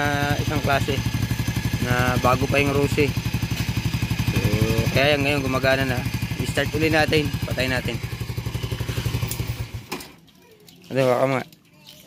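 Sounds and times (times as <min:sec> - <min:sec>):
motorcycle engine idling: 0:00.0 - 0:10.2.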